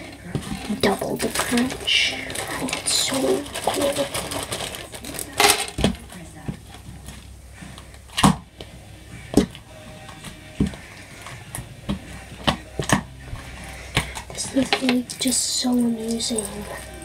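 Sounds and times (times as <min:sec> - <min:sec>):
plastic bag crinkling: 0:00.0 - 0:06.2.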